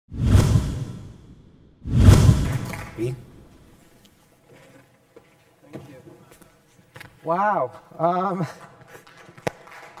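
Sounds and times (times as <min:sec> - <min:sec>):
whoosh sound effect: 0:00.1 - 0:02.9.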